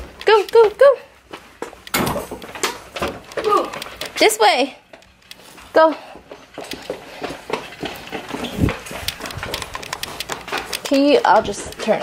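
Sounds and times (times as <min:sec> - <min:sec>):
footsteps on concrete floor: 0:00.0 - 0:12.0.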